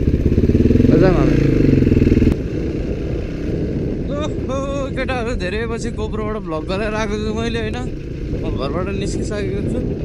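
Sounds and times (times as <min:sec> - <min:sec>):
dirt bike engine running: 0:00.0 - 0:10.0
wind rumble on microphone: 0:00.0 - 0:10.0.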